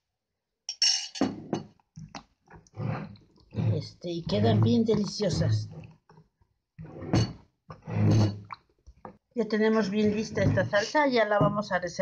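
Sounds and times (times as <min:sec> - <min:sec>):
stone pestle mashing salsa: 0:01.5 - 0:09.2.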